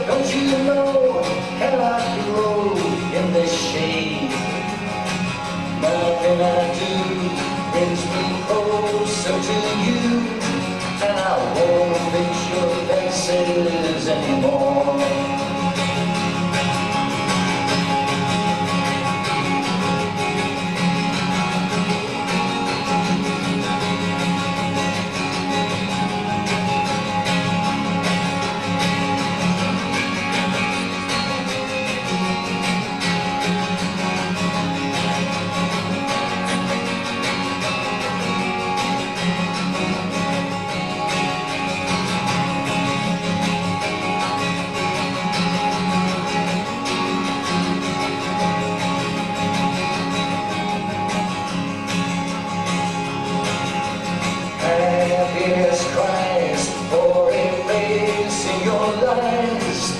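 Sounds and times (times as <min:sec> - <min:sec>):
acoustic guitar strummed: 0:00.0 - 0:59.9.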